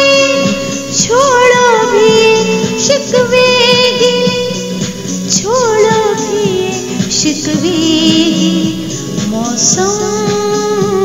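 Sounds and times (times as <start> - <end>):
instrumental backing: 0.0 - 11.0
woman singing: 0.0 - 11.0.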